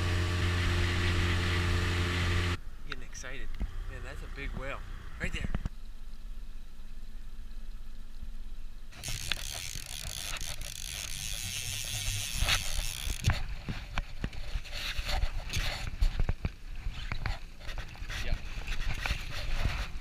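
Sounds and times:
fishing reel ratchet ticking: 0:09.0 - 0:13.4.

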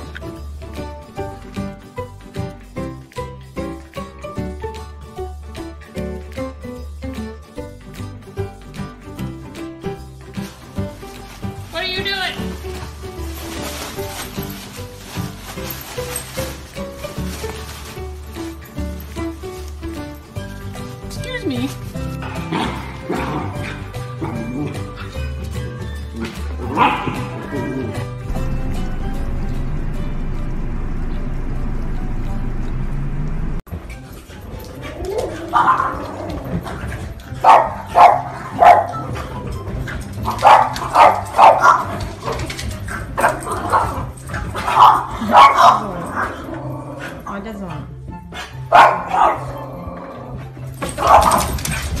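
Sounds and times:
background music with bass line: 0:00.0 - 0:52.0
puppy barking: 0:26.6 - 0:27.4, 0:34.8 - 0:36.2, 0:37.4 - 0:39.3, 0:40.2 - 0:42.4, 0:43.0 - 0:46.4, 0:48.3 - 0:49.7, 0:50.8 - 0:52.0.

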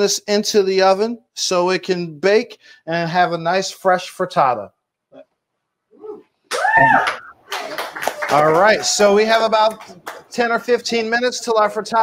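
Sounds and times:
high-pitched vocal whoop: 0:06.0 - 0:07.3
hand claps: 0:06.5 - 0:10.4.

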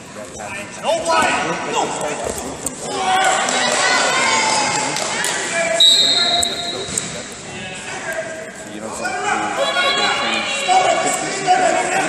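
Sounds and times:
raised voices echoing in a hall: 0:00.0 - 0:12.0
high whistle-like tone: 0:05.8 - 0:07.0.

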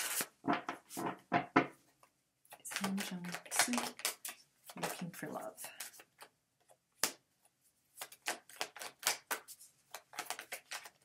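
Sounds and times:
cards being shuffled: 0:00.0 - 0:01.2, 0:02.0 - 0:11.0.

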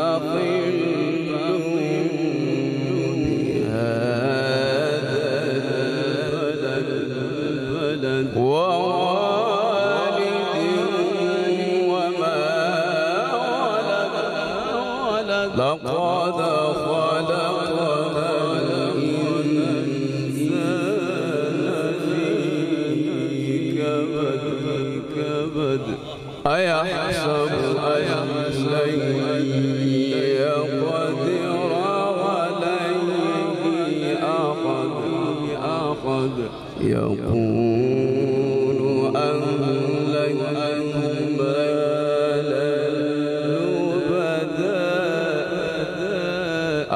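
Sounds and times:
man reciting melodically into microphone: 0:00.0 - 0:46.9.

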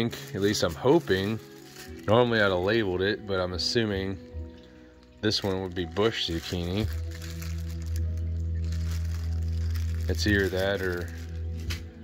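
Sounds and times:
plastic bag crinkling: 0:00.0 - 0:03.0, 0:05.0 - 0:12.0.

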